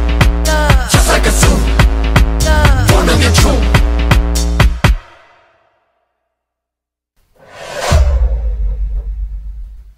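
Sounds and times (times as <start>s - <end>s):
whoosh: 7.4s - 9.9s.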